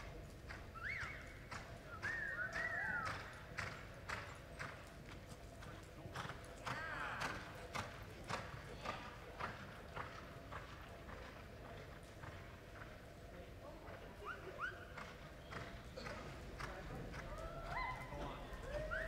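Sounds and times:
horse hooves on soft dirt: 2.5 - 14.3, 14.9 - 19.0.

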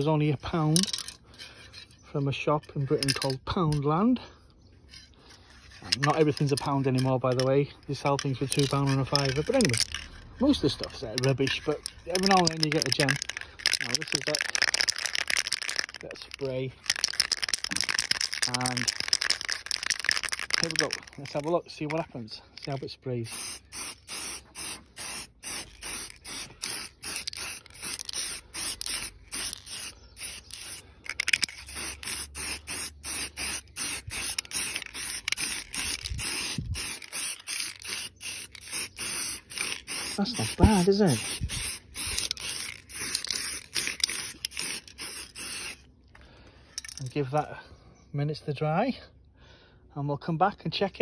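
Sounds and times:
spray can rattling: 0.0 - 1.2, 2.8 - 3.8, 5.8 - 22.0, 22.6 - 45.8, 46.8 - 47.2.

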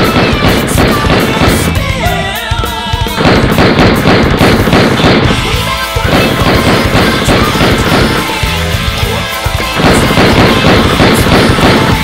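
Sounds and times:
automatic gunfire: 0.0 - 1.8, 3.2 - 5.4, 6.0 - 8.5, 9.6 - 12.0
heavy rock music: 0.0 - 12.0.

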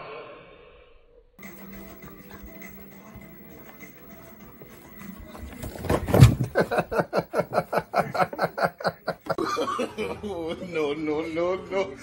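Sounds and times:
person laughing rapidly: 6.5 - 10.2.

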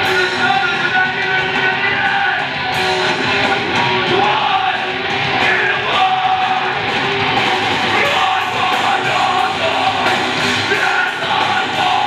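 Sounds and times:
drums with cymbal hits: 0.0 - 12.0
electric guitar: 0.0 - 12.0
person singing: 4.0 - 6.9, 7.9 - 12.0.

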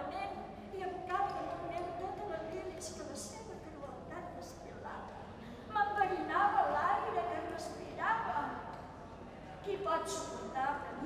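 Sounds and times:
woman speaking expressively: 0.0 - 5.1, 5.7 - 8.7.

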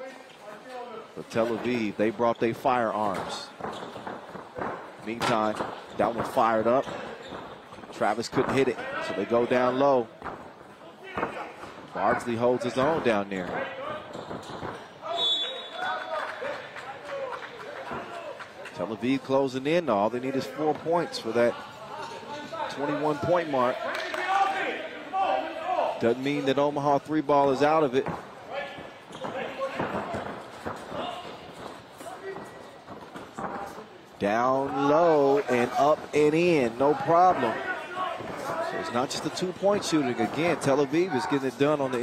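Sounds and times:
voices of players and spectators: 0.0 - 42.0
players calling out: 33.4 - 42.0.

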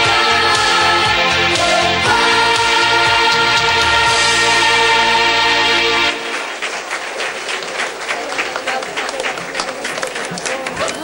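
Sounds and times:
audience applauding: 3.4 - 11.0.

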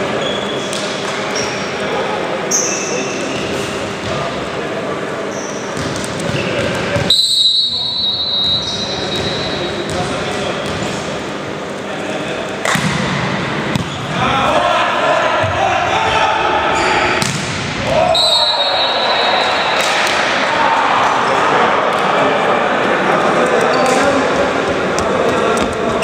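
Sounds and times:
referee's whistle: 7.1 - 9.7, 18.1 - 19.8
volleyball being struck: 12.6 - 13.9, 17.2 - 18.0
players shouting: 13.9 - 26.0.

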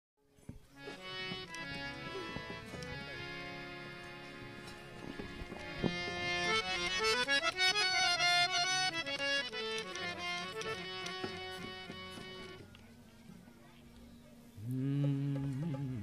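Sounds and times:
harmonium playing: 0.7 - 12.9.

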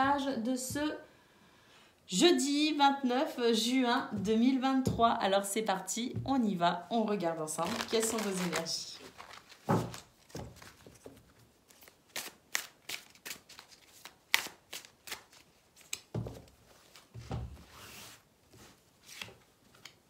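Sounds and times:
playing cards snapping and flicking: 11.7 - 16.1.

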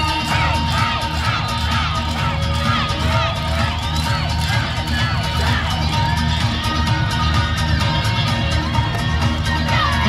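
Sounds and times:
dance music over loudspeakers: 0.0 - 10.0.

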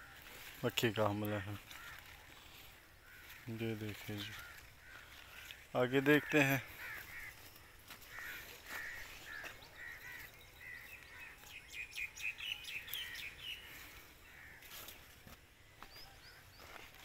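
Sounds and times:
birds calling: 0.0 - 17.0
high bird chirps: 9.1 - 13.8.

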